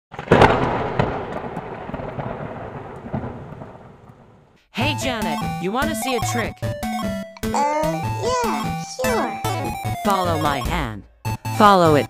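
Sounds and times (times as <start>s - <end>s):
thunderclap: 0.1s - 4.6s.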